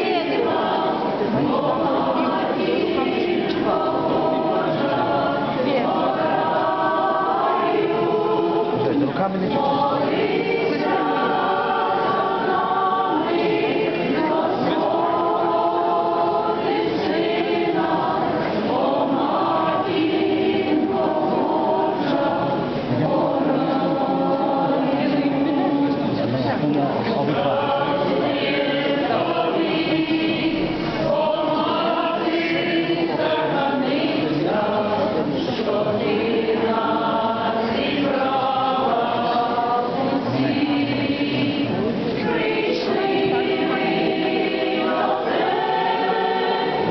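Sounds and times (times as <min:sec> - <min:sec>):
group singing a hymn: 0:00.0 - 0:46.9
people talking: 0:00.0 - 0:46.9.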